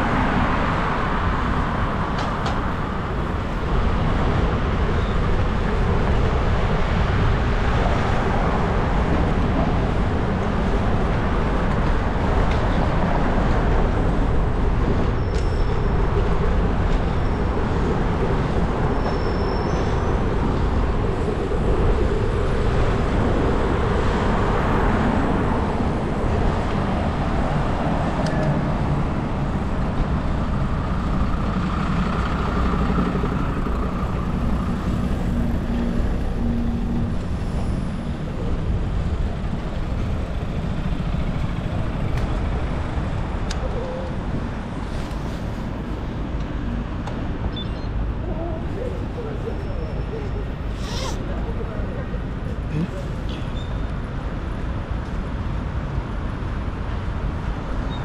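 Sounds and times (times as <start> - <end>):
passing vehicle engines: 0.0 - 58.0.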